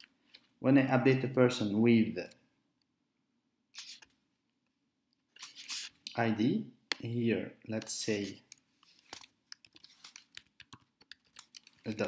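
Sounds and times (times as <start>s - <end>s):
person speaking: 0.6s - 2.5s, 5.4s - 12.0s.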